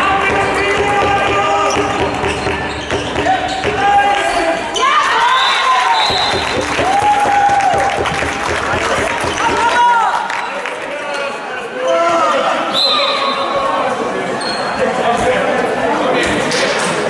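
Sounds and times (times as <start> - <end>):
ball bouncing on hall floor: 0.0 - 4.0, 6.0 - 10.1
shoes squeaking: 1.5 - 5.4.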